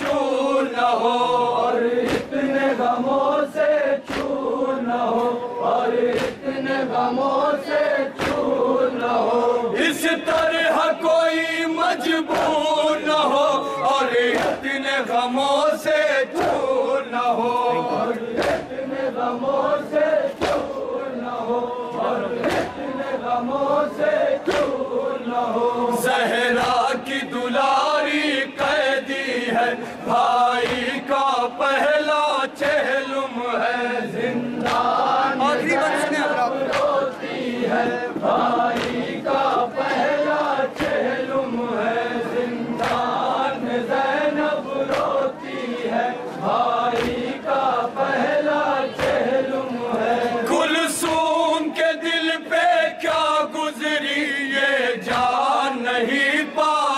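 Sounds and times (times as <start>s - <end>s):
sharp slaps: 0.0s - 0.4s, 2.0s - 2.5s, 4.0s - 5.4s, 6.0s - 6.6s, 8.2s - 8.7s, 12.2s - 12.8s, 14.3s - 14.8s, 16.3s - 16.8s, 17.4s - 18.8s, 20.3s - 20.9s, 22.4s - 22.8s, 24.4s - 24.9s, 26.5s - 27.1s, 30.2s - 31.1s, 32.5s - 33.0s, 34.6s - 35.1s, 35.8s - 39.2s, 40.6s - 41.3s, 42.2s - 43.9s, 44.8s - 45.3s, 46.8s - 48.0s, 48.9s - 49.3s, 55.0s - 55.4s
men chanting in unison: 0.0s - 56.9s.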